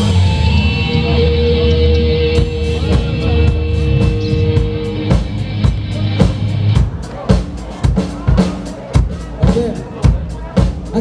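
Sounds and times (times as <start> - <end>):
rock band playing live: 0.0 - 11.0
strong drum hits: 2.4 - 11.0.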